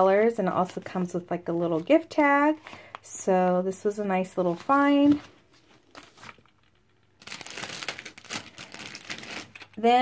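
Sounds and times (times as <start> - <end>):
packaging crinkling: 4.6 - 9.8.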